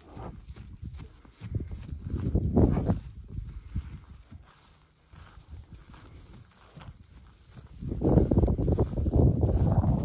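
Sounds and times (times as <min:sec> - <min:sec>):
horse hooves trotting on grass: 0:00.0 - 0:10.0.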